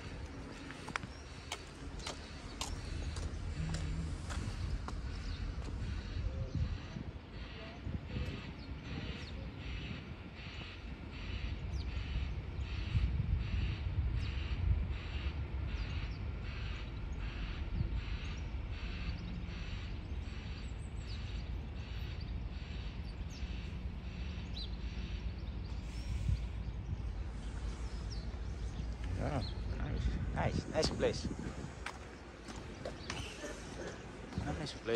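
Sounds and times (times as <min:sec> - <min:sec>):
distant traffic: 0:00.0 - 0:34.9
wind: 0:00.0 - 0:34.9.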